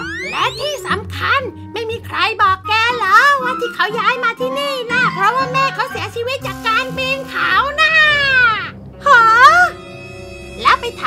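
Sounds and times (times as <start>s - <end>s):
cartoon shrieks: 0.0s - 0.7s
background music: 0.0s - 11.0s.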